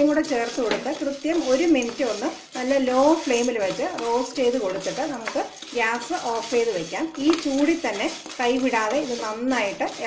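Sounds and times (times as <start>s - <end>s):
lentils scraped in a pan: 0.0s - 10.0s
woman talking: 0.0s - 10.0s.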